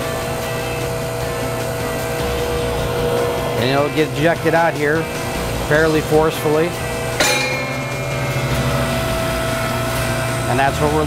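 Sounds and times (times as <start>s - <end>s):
machine hum: 0.0s - 11.0s
mid-pitched machine whine: 0.0s - 11.0s.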